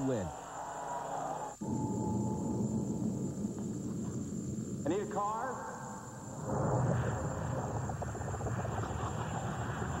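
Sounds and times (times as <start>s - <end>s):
faint thin steady tone: 0.0s - 4.9s
low steady rumbling: 1.6s - 10.0s.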